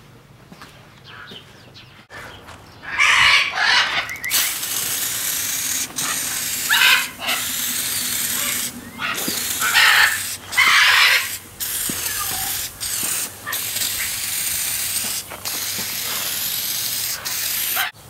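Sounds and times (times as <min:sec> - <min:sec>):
aerosol can spraying: 0:04.2 - 0:18.0.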